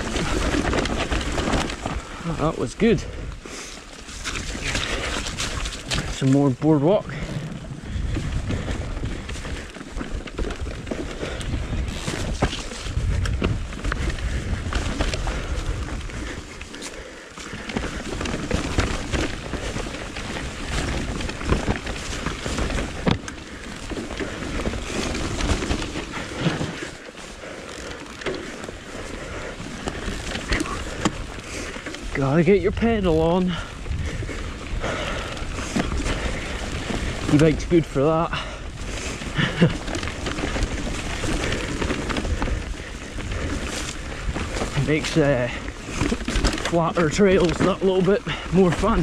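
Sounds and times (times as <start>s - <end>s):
bike knocking and rattling: 0.0s - 49.0s
bike tyres on dirt trail: 0.0s - 49.0s
low microphone rumble: 7.0s - 9.7s, 10.3s - 48.8s.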